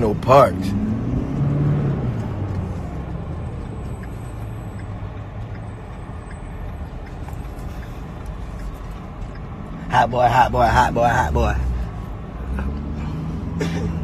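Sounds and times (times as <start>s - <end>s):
road noise: 0.0s - 14.0s
vehicle engine rumble: 0.0s - 14.0s.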